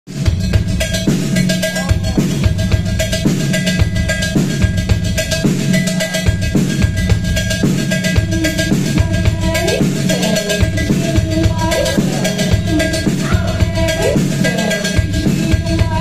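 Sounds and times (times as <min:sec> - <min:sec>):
drums busy beat: 0:00.1 - 0:16.0.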